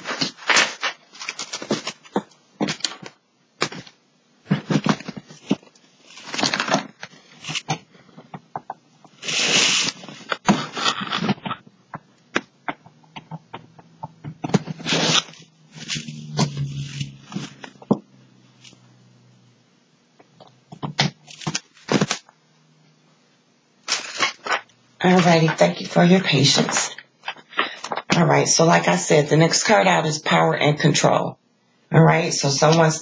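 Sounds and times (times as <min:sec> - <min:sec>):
low hum: 0:09.4 - 0:20.7.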